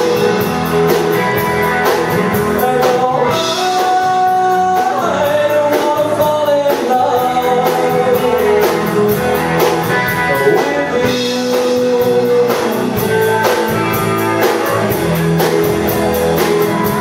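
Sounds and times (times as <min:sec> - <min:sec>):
live rock band playing: 0:00.0 - 0:17.0.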